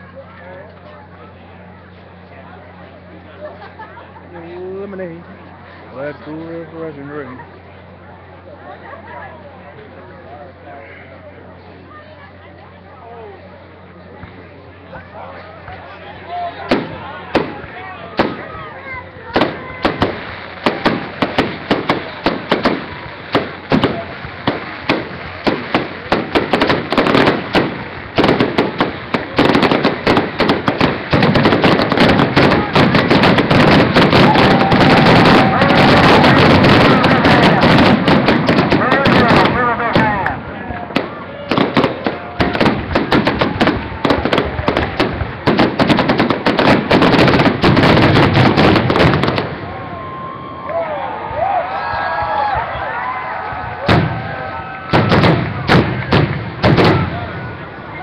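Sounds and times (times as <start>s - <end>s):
fireworks bangs and crackles: 16.6s - 50.6s, 53.4s - 58.0s.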